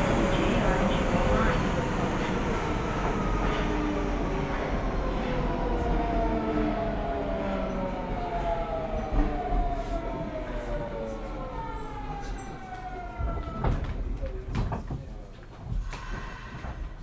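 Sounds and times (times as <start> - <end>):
train inverter whine: 0.0 - 14.4.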